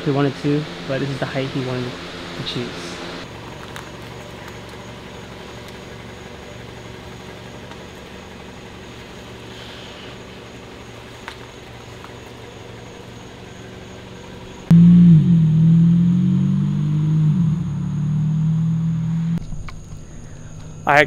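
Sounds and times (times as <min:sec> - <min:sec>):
loud low droning tone: 0:00.0 - 0:03.2, 0:14.7 - 0:21.0
car engine idling: 0:00.0 - 0:21.0.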